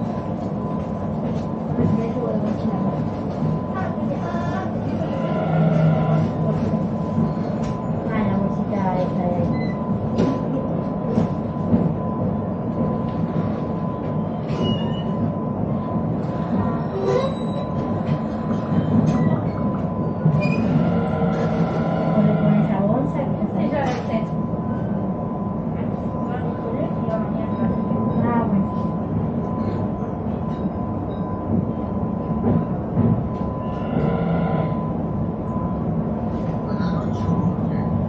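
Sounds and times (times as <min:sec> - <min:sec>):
train wheels rumbling on track: 0:00.0 - 0:38.0.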